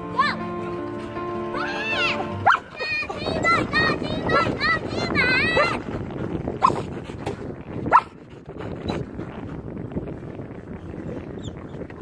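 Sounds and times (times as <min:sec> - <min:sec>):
music: 0:00.0 - 0:05.6
outdoor background noise: 0:00.0 - 0:12.0
dog yelping: 0:02.4 - 0:02.7.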